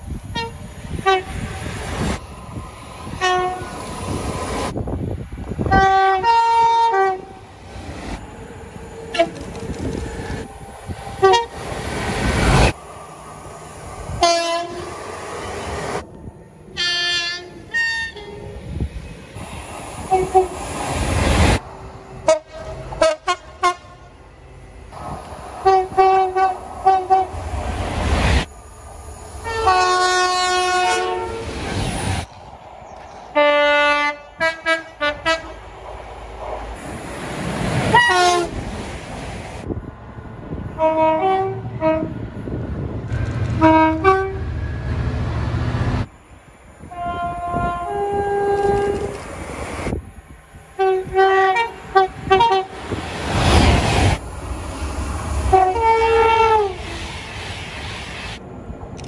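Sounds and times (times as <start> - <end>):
train rumble: 0.0 - 59.0
two-tone train horn blasts: 0.3 - 1.7, 3.2 - 3.8, 5.7 - 7.4, 9.1 - 9.4, 11.2 - 11.6, 14.2 - 14.9, 16.8 - 18.5, 22.2 - 24.1, 25.6 - 27.4, 29.4 - 31.5, 33.4 - 35.6, 37.9 - 38.6, 40.8 - 42.2, 43.5 - 44.6, 46.8 - 49.1, 50.8 - 52.8, 55.5 - 57.0.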